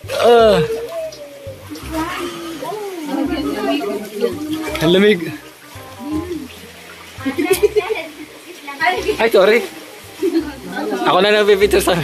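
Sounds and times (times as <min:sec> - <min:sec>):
people calling out and exclaiming: 0:00.0 - 0:11.4.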